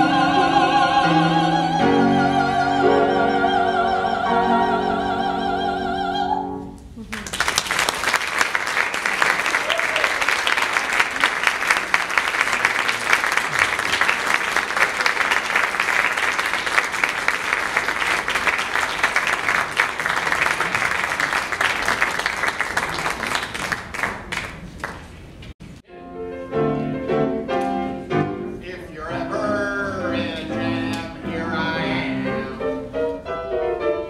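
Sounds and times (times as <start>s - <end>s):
audience applauding: 7.1s - 25.2s.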